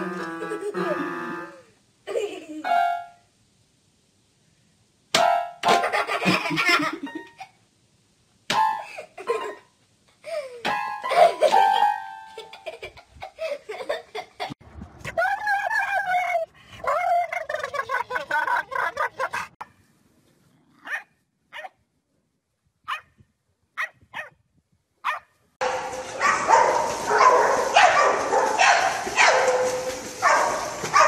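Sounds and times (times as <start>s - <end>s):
dogs splashing in water: 25.6s - 31.0s.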